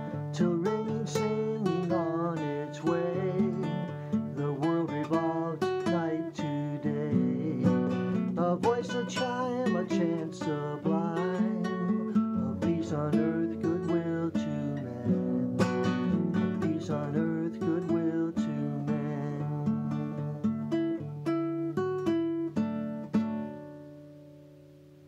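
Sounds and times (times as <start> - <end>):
acoustic guitar picking: 0.0 - 25.0.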